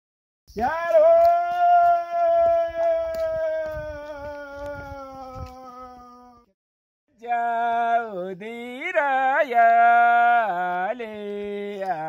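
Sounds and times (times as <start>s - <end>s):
person singing a long note: 0.6s - 6.5s.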